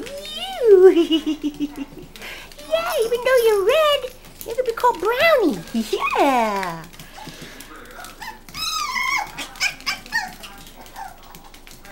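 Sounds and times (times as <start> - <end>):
puppy whining: 0.0 - 11.9.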